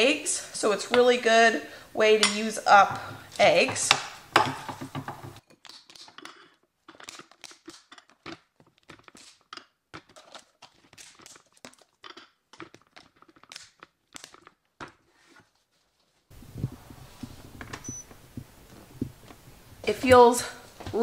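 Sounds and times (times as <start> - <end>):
containers knocking lightly: 3.0 - 5.4.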